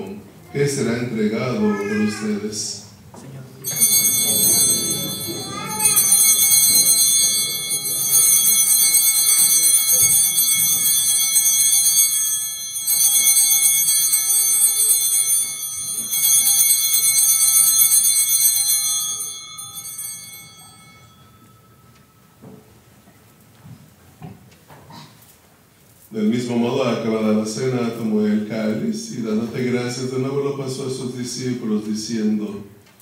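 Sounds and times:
altar bells pealing: 0:03.6 - 0:23.0.

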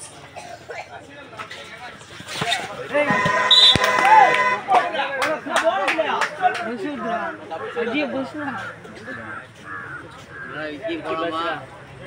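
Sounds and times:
people talking in background: 0:00.0 - 0:12.0
crow cawing: 0:09.0 - 0:10.6.

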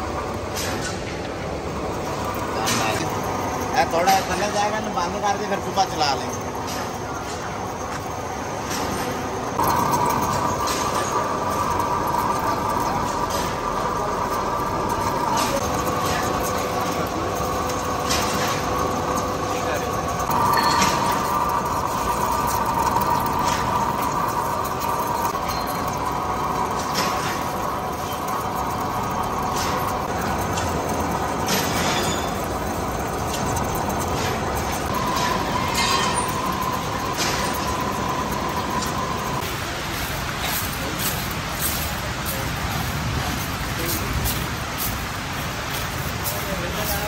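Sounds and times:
lathe cutting steel: 0:01.7 - 0:45.0
metal chips clinking: 0:09.6 - 0:39.4.

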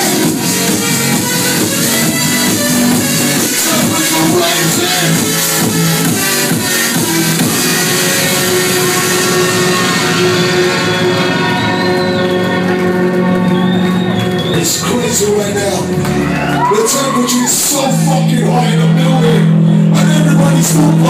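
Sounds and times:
drum and bass music: 0:00.0 - 0:21.0.

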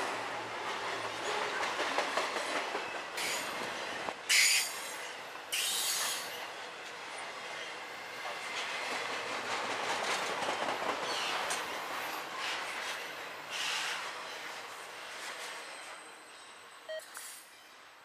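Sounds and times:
freight train passing: 0:00.0 - 0:18.0.

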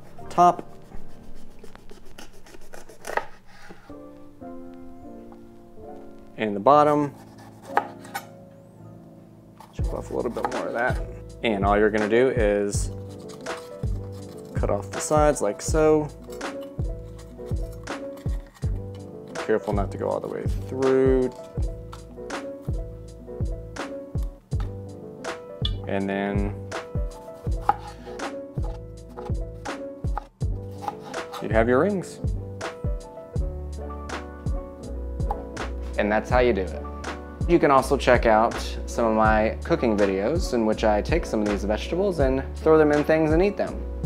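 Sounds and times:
knife slicing pepper on board: 0:01.9 - 0:03.6, 0:07.2 - 0:08.2, 0:09.6 - 0:10.8, 0:12.9 - 0:14.5, 0:27.5 - 0:29.4, 0:30.2 - 0:31.5
knife striking cutting board: 0:27.5 - 0:27.9.

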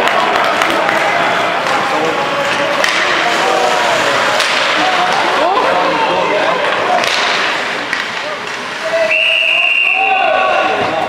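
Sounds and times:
skates scraping ice: 0:00.0 - 0:11.0
sharp crack: 0:02.4 - 0:05.4, 0:06.8 - 0:08.8.

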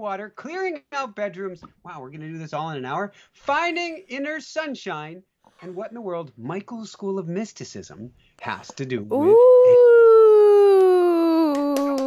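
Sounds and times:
person singing long ooh: 0:09.1 - 0:12.0.

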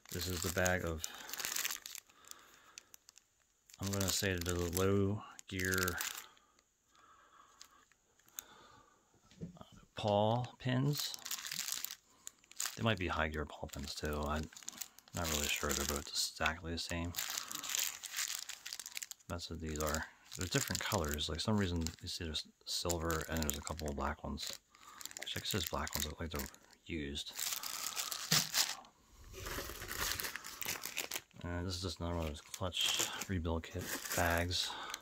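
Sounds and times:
plastic bag crinkling: 0:00.0 - 0:06.6, 0:10.0 - 0:35.0.

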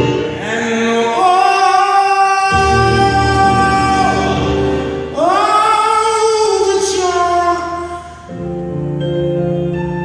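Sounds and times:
low keyboard accompaniment: 0:00.0 - 0:10.0
man singing a high held note: 0:00.4 - 0:08.2.

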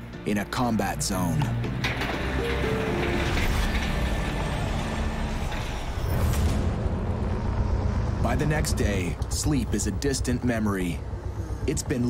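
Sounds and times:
turboprop aircraft drone: 0:05.1 - 0:12.0.

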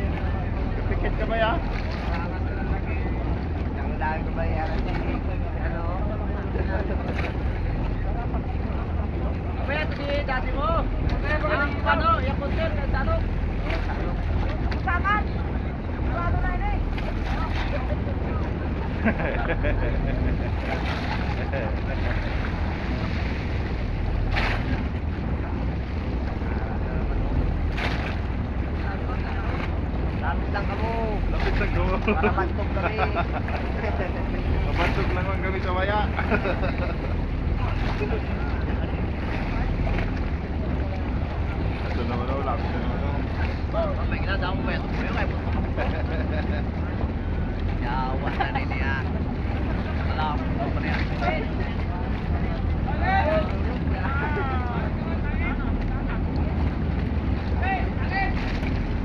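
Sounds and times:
choppy sea water: 0:00.0 - 0:59.0.

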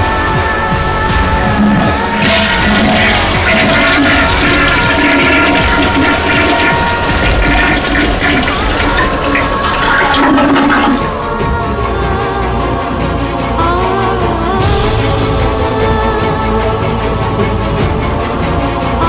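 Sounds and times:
background music: 0:00.0 - 0:19.0
toilet flushing: 0:01.0 - 0:11.2.

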